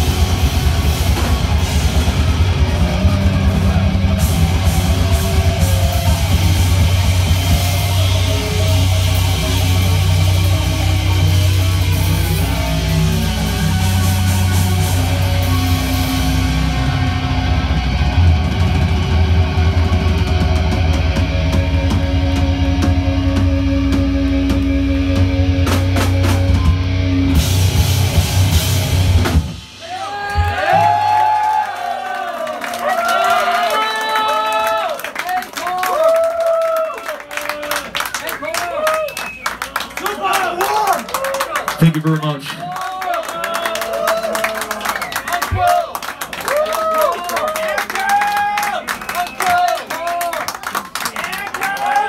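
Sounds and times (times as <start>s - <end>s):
heavy metal band playing: 0.0s - 31.2s
crowd cheering and shouting: 0.0s - 52.0s.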